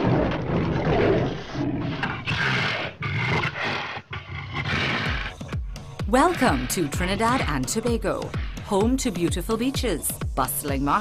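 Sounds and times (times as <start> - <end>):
lion roaring: 0.0 - 8.7.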